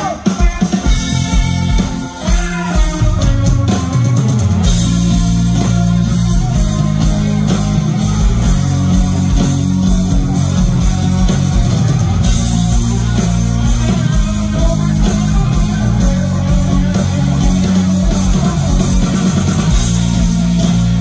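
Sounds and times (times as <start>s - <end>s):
bass guitar: 0.0s - 21.0s
drum kit: 0.0s - 21.0s
electric guitars: 0.0s - 21.0s.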